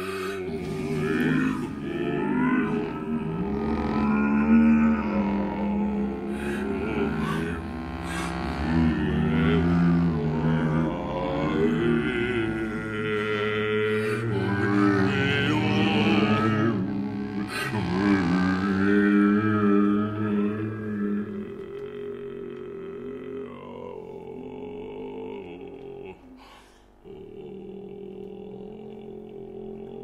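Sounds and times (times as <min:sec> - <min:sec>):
flute sustained wavering tones: 0:00.0 - 0:22.3
low drone: 0:00.0 - 0:30.0.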